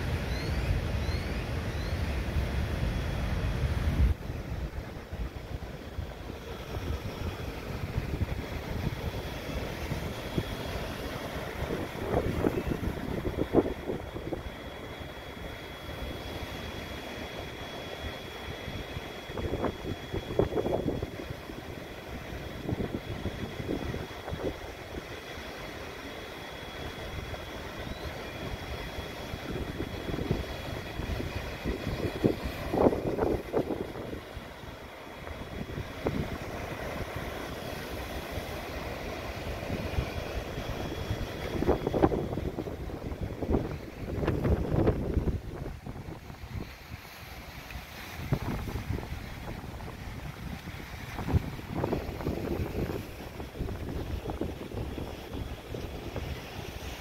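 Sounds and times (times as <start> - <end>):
wind buffeting microphone: 0.0 - 16.2, 18.4 - 25.1, 27.0 - 38.6, 39.4 - 57.0.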